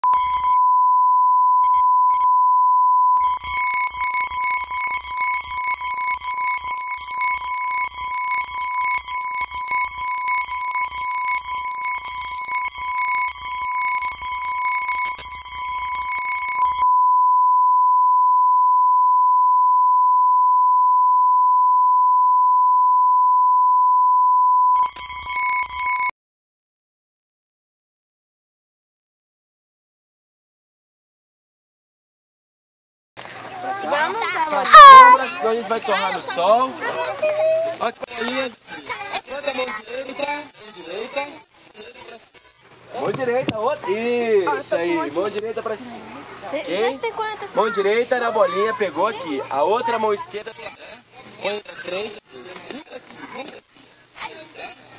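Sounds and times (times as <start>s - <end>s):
steady test tone: 0.0s - 23.9s, 34.7s - 35.2s.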